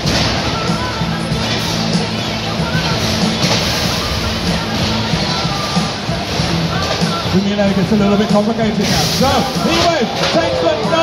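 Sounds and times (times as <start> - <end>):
crowd noise: 0.0 - 11.0
music over loudspeakers: 0.0 - 11.0.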